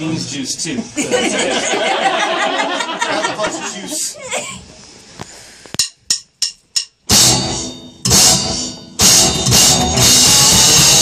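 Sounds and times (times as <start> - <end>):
rock band chords: 7.0 - 11.0.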